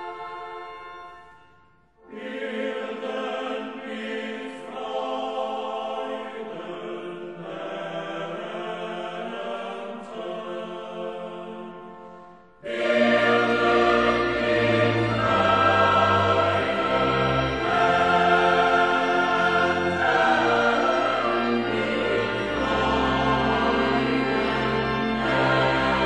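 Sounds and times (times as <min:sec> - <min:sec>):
choir singing: 0:02.0 - 0:26.0
instrumental accompaniment: 0:11.4 - 0:26.0.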